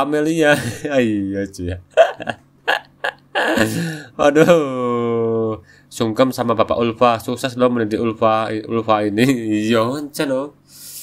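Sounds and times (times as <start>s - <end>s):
man laughing: 0.5s - 1.0s, 1.9s - 5.4s.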